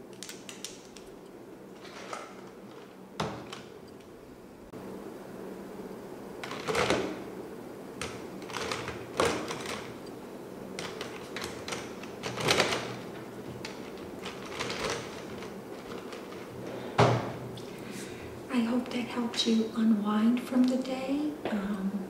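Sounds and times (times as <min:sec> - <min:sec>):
plastic pens rattling in canister: 0:13.6 - 0:16.5.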